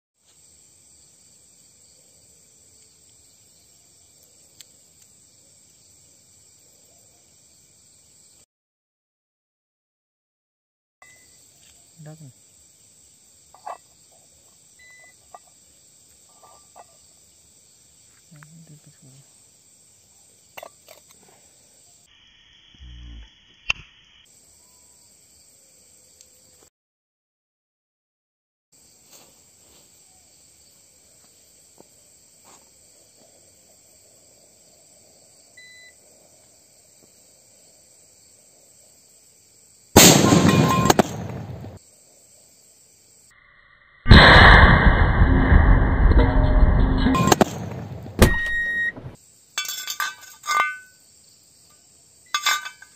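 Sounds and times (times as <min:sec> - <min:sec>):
crickets chirring: 0:00.2 - 0:08.5, 0:11.0 - 0:26.7, 0:28.8 - 0:52.9
small sharp click: 0:23.7 - 0:23.9
short low rumble: 0:44.1 - 0:48.1.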